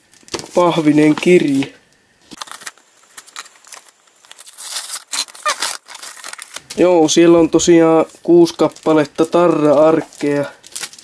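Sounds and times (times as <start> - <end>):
paper rustling: 2.3 - 6.9.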